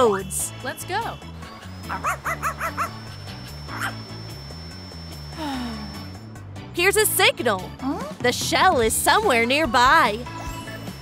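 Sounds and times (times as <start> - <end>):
thin high tone: 0.0 - 7.2
background music: 0.0 - 11.0
small dog yapping: 2.0 - 3.0.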